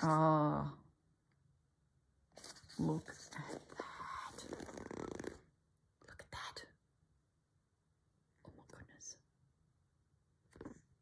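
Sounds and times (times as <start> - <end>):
woman whispering: 2.7 - 4.8, 6.0 - 6.8, 8.4 - 9.3.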